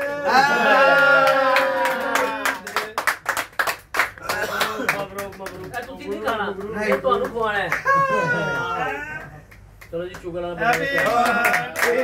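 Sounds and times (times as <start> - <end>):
people clapping in time: 0.0 - 8.0, 9.2 - 12.0.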